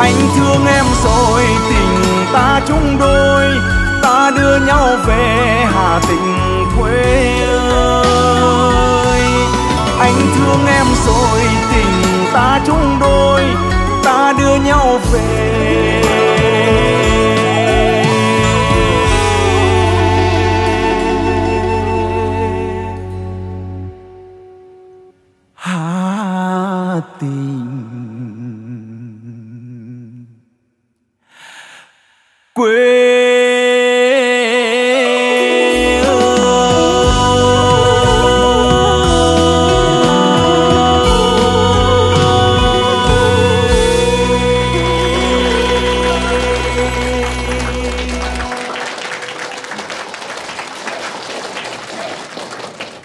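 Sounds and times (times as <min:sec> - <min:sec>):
man singing long low note: 0:00.0 - 0:23.6, 0:25.6 - 0:30.4, 0:32.6 - 0:49.4
held final chord of song: 0:35.1 - 0:50.0
audience applauding: 0:35.1 - 0:53.0.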